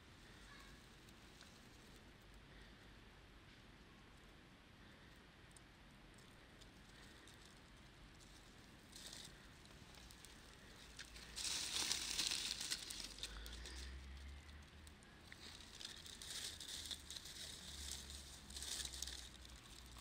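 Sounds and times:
dry leaves rustling and crackling: 0:08.2 - 0:20.0.

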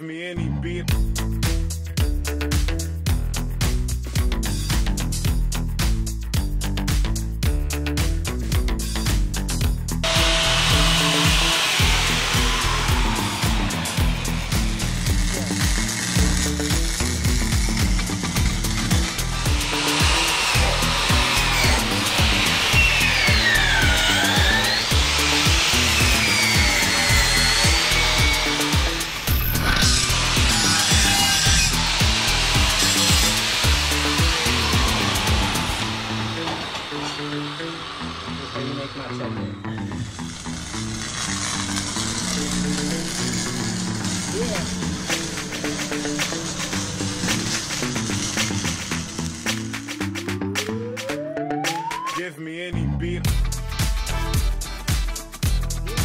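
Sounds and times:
background music with steady beat: 0:00.9 - 0:40.3, 0:42.2 - 0:52.4, 0:53.2 - 0:56.0
angle grinder on metal: 0:10.0 - 0:50.2.

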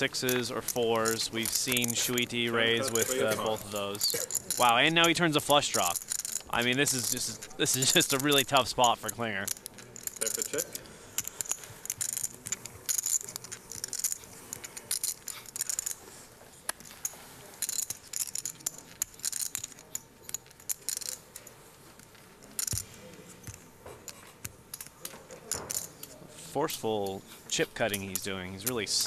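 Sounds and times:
commentator speaking: 0:00.0 - 0:09.5
poker chips clicking: 0:00.0 - 0:29.0.

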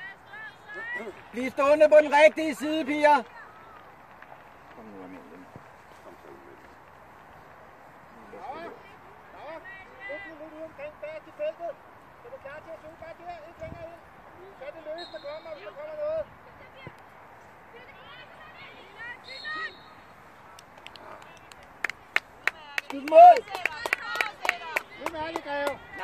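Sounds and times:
loud shouting nearby: 0:00.0 - 0:04.0, 0:17.7 - 0:21.4
distant players shouting: 0:17.7 - 0:21.4
sharp hand claps: 0:20.5 - 0:26.0.

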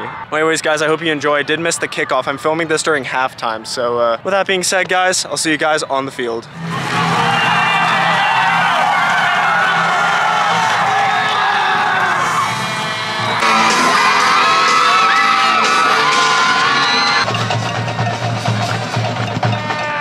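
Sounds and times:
music playing: 0:06.5 - 0:20.0
crowd cheering and whooping: 0:06.6 - 0:18.9.

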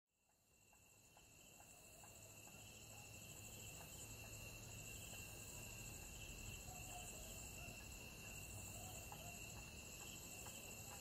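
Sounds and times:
insects chirring: 0:00.2 - 0:11.0.

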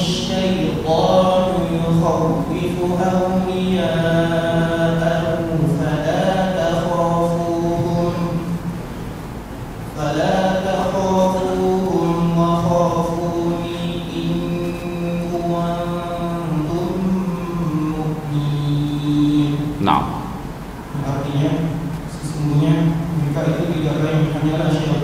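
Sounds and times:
man reciting melodically: 0:00.0 - 0:08.6, 0:09.8 - 0:25.0.

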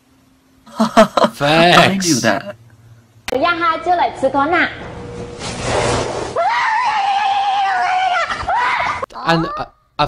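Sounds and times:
long high-pitched scream: 0:06.4 - 0:09.0.

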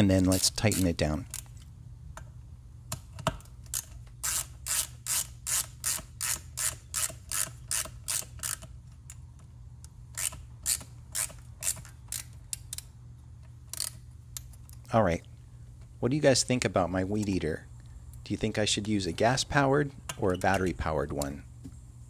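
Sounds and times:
ratchet driver clicking: 0:00.2 - 0:01.6, 0:02.9 - 0:09.2, 0:09.8 - 0:14.8.

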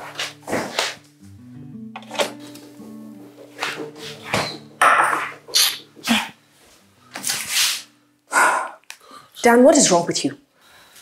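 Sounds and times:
person huffing and sniffing: 0:07.5 - 0:08.8.

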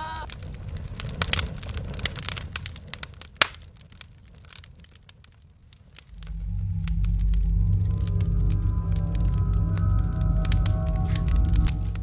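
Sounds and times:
campfire crackling and snapping: 0:00.2 - 0:12.0
low music drone: 0:06.1 - 0:12.0.

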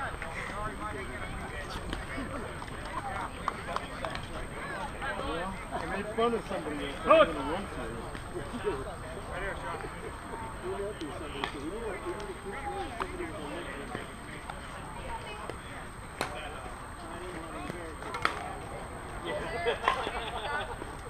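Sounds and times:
players chatting: 0:00.0 - 0:21.0.

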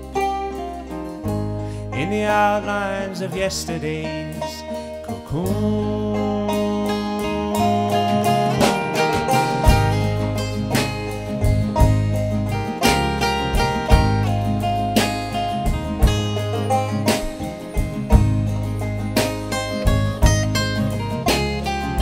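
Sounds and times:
acoustic guitar: 0:00.0 - 0:22.0
banjo playing: 0:00.0 - 0:22.0
low sustained bass notes: 0:00.0 - 0:22.0.

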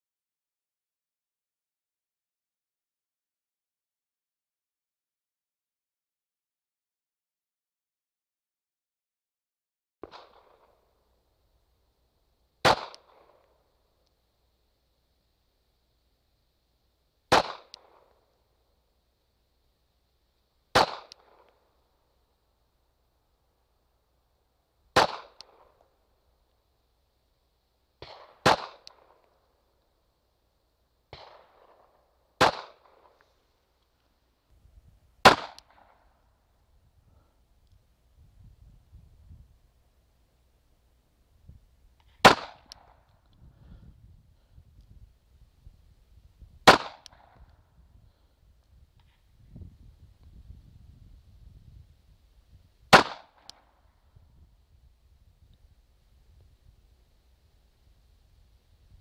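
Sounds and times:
pistol shots with echo: 0:12.6 - 0:13.6, 0:17.3 - 0:18.3, 0:20.7 - 0:21.7, 0:25.0 - 0:25.9, 0:28.0 - 0:29.4, 0:31.1 - 0:33.2, 0:35.2 - 0:36.1, 0:42.2 - 0:43.0, 0:46.6 - 0:47.4, 0:52.9 - 0:53.7
small sharp tick: 0:42.0 - 0:43.5, 0:53.0 - 0:53.7.

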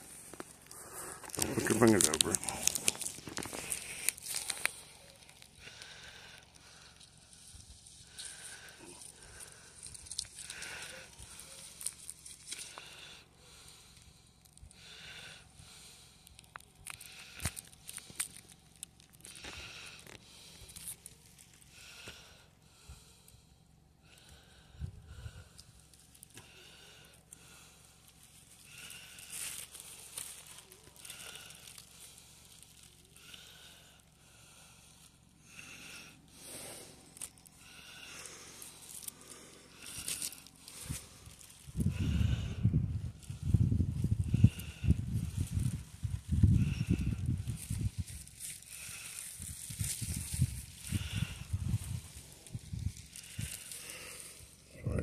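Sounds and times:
rustling and crinkling of boughs: 0:00.0 - 0:23.1, 0:24.1 - 0:42.5, 0:43.1 - 0:55.0.

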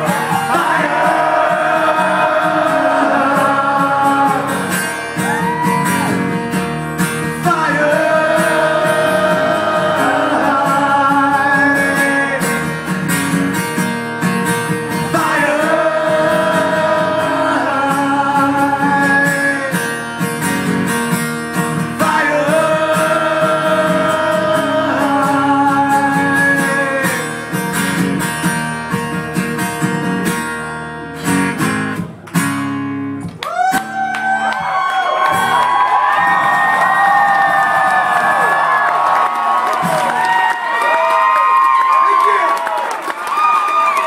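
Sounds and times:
person singing long notes: 0:00.0 - 0:05.6, 0:07.4 - 0:12.6
crowd cheering and shouting: 0:00.0 - 0:12.6, 0:15.1 - 0:19.6, 0:33.3 - 0:44.0
strummed acoustic guitar: 0:00.0 - 0:34.0
whoops and whistles: 0:05.2 - 0:06.2.

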